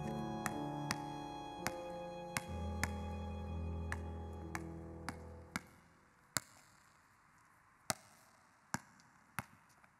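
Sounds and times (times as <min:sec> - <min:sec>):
background music: 0:00.0 - 0:06.0
basketball bouncing on hard court: 0:03.9 - 0:07.0.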